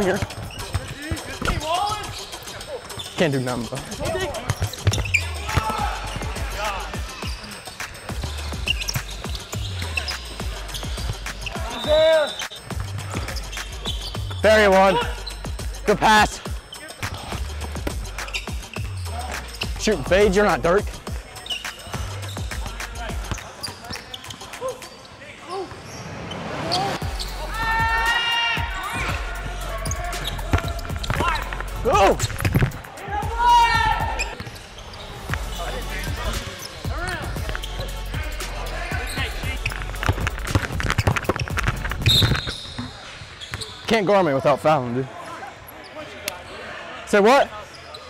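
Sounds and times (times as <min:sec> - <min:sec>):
players shouting: 0:04.0 - 0:12.5, 0:13.2 - 0:34.4.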